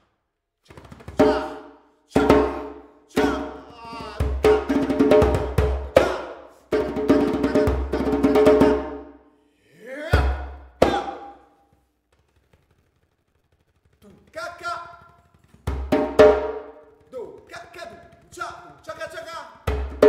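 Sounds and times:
person chanting loudly: 1.2 - 6.5, 7.1 - 8.6, 9.8 - 11.4
djembe slaps and bass strokes: 2.2 - 8.9, 15.4 - 17.6.

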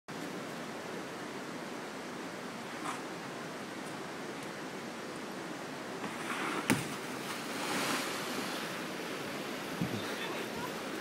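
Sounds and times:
water rushing at a weir: 0.1 - 11.0.

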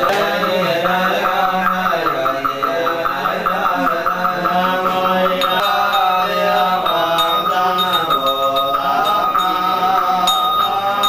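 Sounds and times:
monks chanting: 0.0 - 11.0
bowl bell ringing: 3.6 - 11.0.

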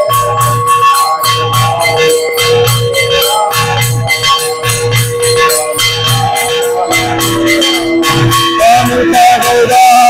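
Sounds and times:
hand cymbals clashing: 0.0 - 10.0
long held tones: 0.0 - 10.0.

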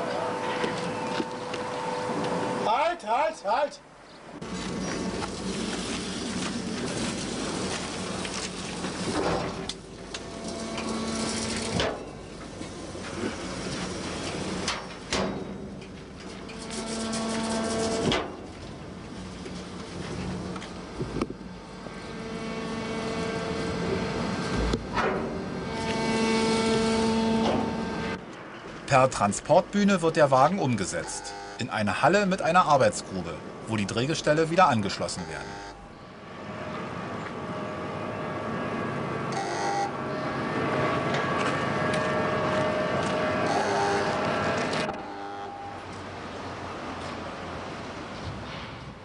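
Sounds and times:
workshop machinery humming: 0.0 - 2.7, 3.9 - 48.1.

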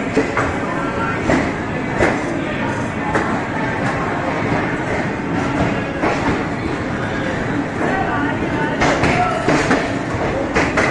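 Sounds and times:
train wheels rumbling on rails: 0.0 - 10.9.

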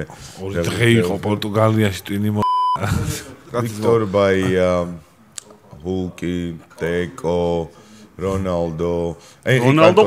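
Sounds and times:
men talking: 0.0 - 10.0
electronic censor bleep: 2.4 - 2.8.

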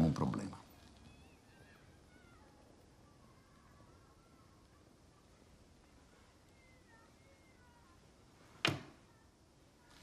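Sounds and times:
high gliding animal calls: 0.9 - 4.9.

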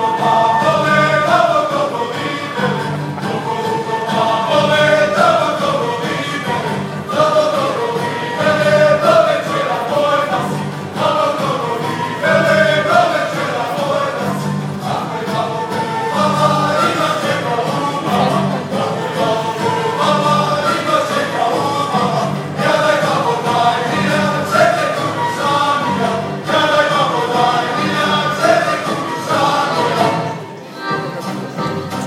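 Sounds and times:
accordion: 0.0 - 32.0
choir singing folk song: 0.0 - 32.0
double bass: 0.0 - 32.0
folk orchestra: 0.0 - 32.0.

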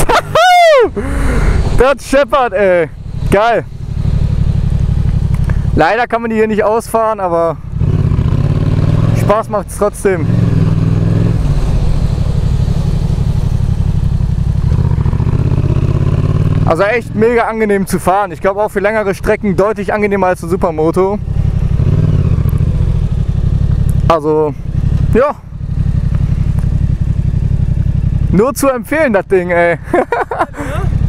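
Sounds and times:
motorcycle engine at low revs: 0.0 - 31.0.

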